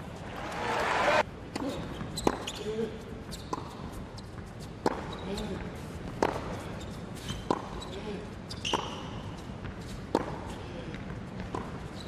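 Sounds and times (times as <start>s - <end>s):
crowd noise: 0.0s - 1.2s
shoe squeak: 1.6s - 4.4s, 5.0s - 5.6s, 6.6s - 10.0s.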